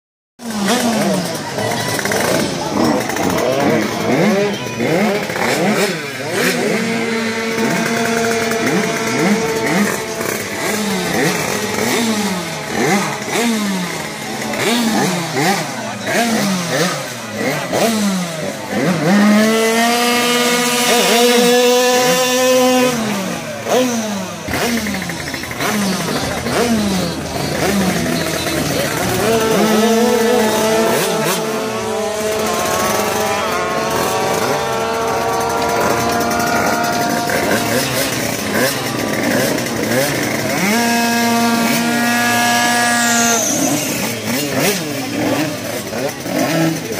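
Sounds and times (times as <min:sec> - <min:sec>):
scooter engines revving hard: 0:00.4 - 0:46.9.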